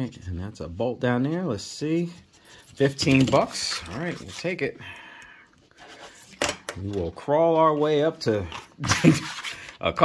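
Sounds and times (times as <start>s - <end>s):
paper rustling: 2.0s - 4.7s, 5.6s - 10.0s.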